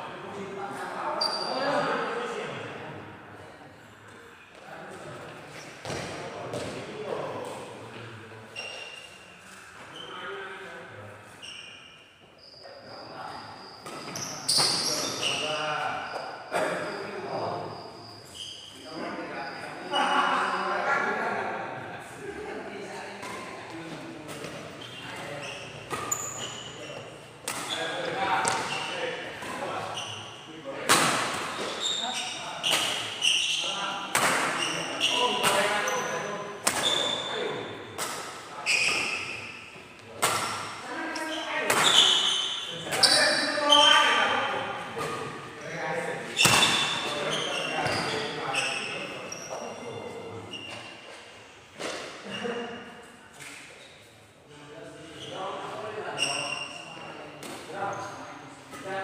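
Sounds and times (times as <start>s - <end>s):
shoes squeaking on wooden floor: 12.3s - 18.8s, 24.7s - 30.3s, 31.4s - 37.4s, 38.6s - 44.3s, 46.2s - 51.2s.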